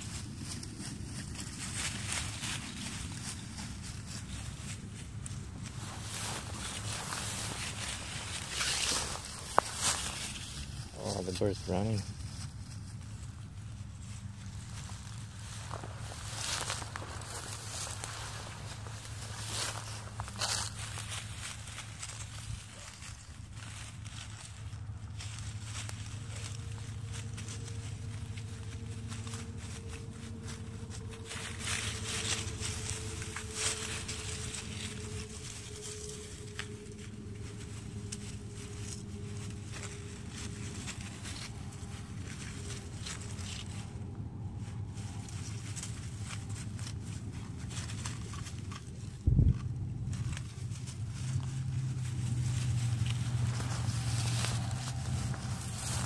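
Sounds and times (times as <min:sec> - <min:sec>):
footsteps in dry grass: 0:00.0 - 0:56.0
steady low hum: 0:00.0 - 0:56.0
faint drawn-out tone: 0:26.3 - 0:45.3.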